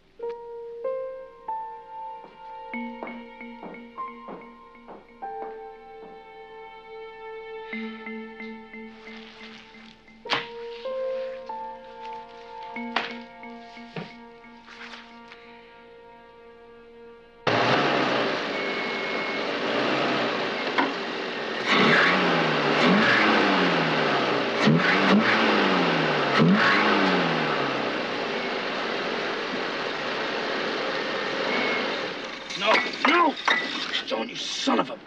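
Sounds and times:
car engine revving: 17.4s - 32.7s.

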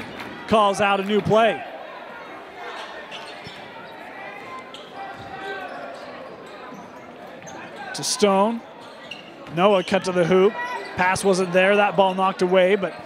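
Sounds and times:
crowd and player voices echoing: 0.0s - 13.0s.

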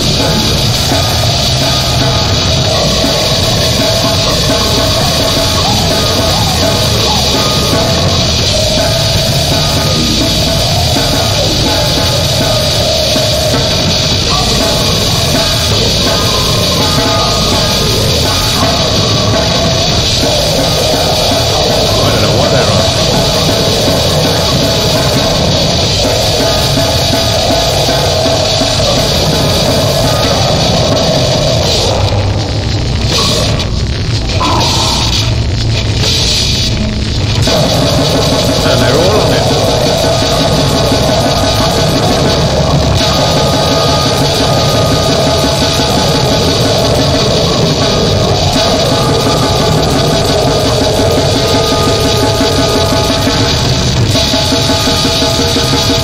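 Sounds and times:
distorted extreme metal music: 0.0s - 56.0s.

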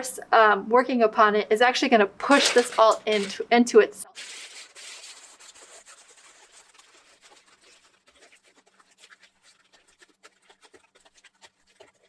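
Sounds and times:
aluminium foil crinkling: 2.3s - 3.4s, 4.1s - 12.0s.

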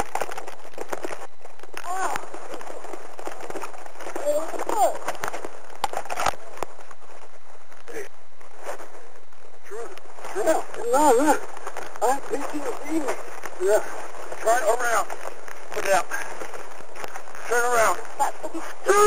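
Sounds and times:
steady background hiss: 0.0s - 19.0s.

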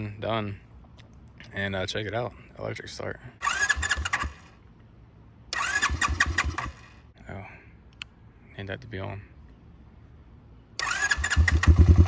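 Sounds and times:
electric starter cranking engine: 3.4s - 4.5s, 5.5s - 6.9s, 10.8s - 12.0s.

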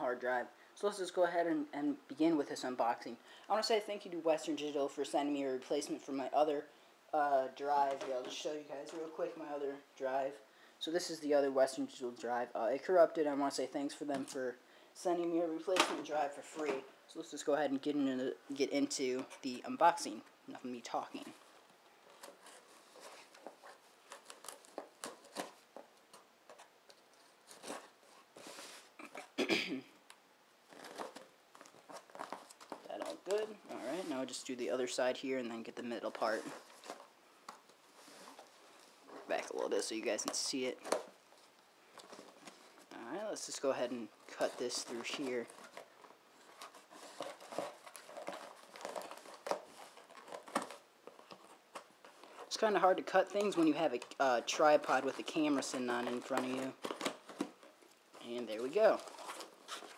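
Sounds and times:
tape crinkling: 20.8s - 29.4s, 30.1s - 34.5s, 36.0s - 59.9s.

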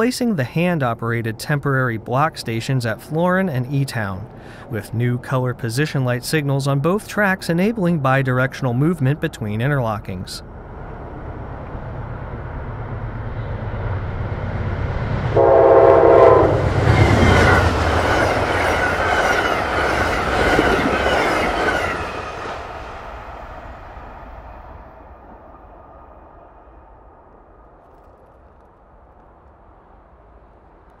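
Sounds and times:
train rumble: 0.0s - 31.0s
train wheel and coach noise: 0.0s - 31.0s
train horn chord: 15.3s - 17.0s.

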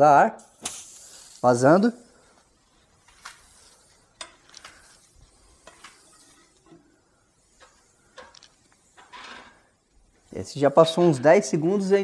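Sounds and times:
hiss of air escaping tyre: 0.5s - 9.4s.

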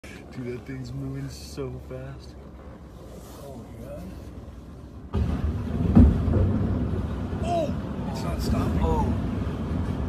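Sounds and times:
jet low rumble: 0.2s - 10.0s.

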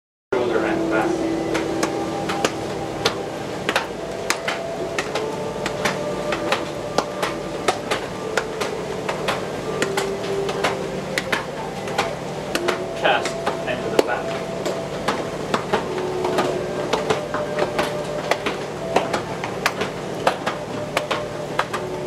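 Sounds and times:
low machinery hum: 0.4s - 22.0s
hands slapping against body: 1.5s - 22.0s.

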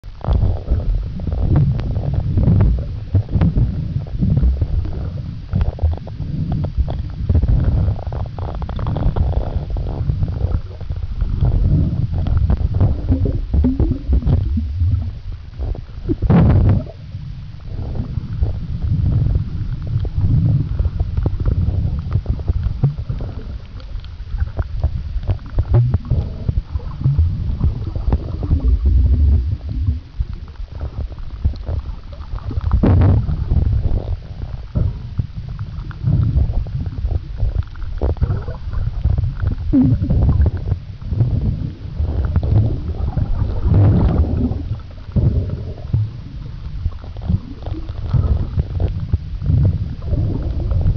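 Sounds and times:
muffled underwater rumble: 0.0s - 50.9s.

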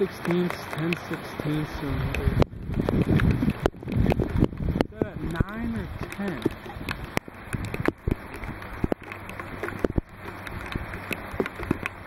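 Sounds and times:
rain falling: 0.0s - 12.0s
raindrops tapping close by: 0.0s - 12.0s.

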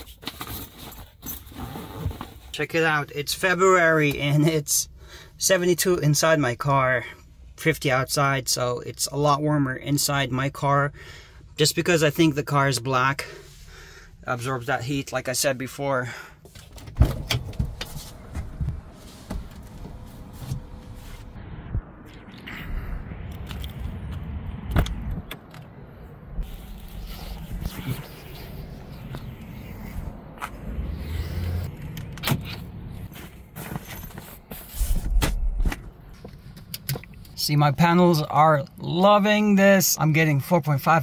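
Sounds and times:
clothes rustling: 17.4s - 21.4s.

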